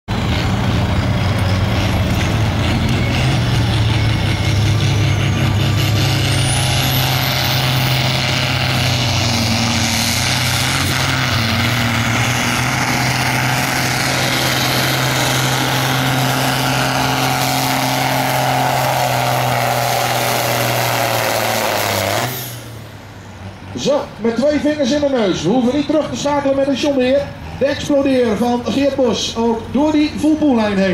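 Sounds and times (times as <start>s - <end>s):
tractor diesel engine droning: 0.1s - 30.9s.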